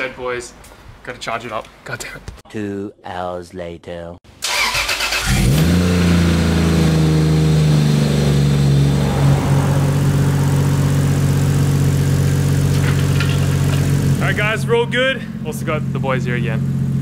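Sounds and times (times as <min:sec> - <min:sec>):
car engine starting and idling: 0:04.4 - 0:17.0.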